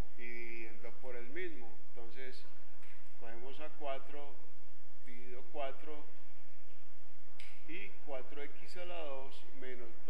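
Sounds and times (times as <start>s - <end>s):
low electrical hum: 0.0s - 10.0s
sharp click: 7.4s - 7.7s.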